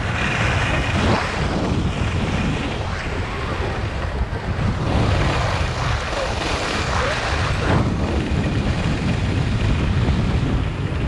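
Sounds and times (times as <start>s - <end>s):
skis sliding on snow: 0.0s - 10.4s
wind buffeting microphone: 0.0s - 11.0s.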